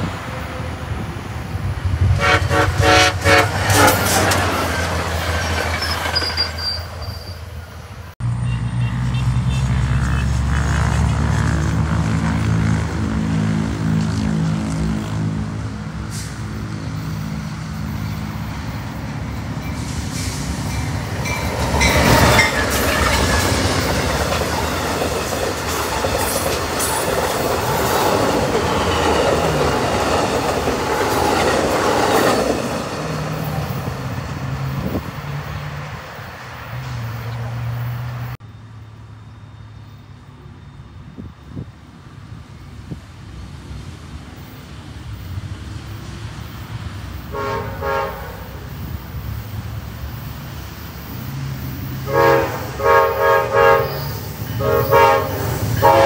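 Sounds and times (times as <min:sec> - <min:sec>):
train cars rolling on rails: 0:00.0 - 0:08.4, 0:10.0 - 0:56.0
commuter train passing: 0:00.0 - 0:56.0
diesel locomotive engine drone: 0:00.0 - 0:56.0
train horn: 0:02.0 - 0:04.6, 0:47.2 - 0:48.6, 0:52.0 - 0:56.0.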